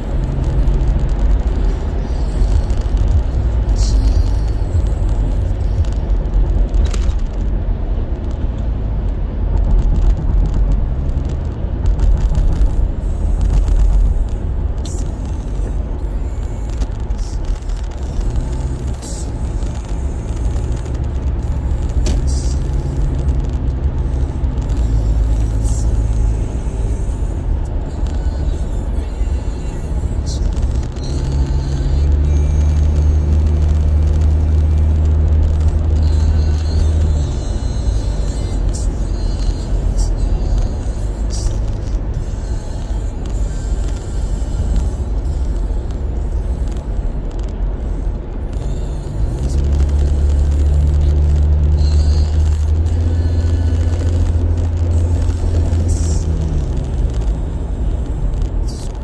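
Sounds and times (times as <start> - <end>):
engine and tyre rumble: 0.0 - 59.0.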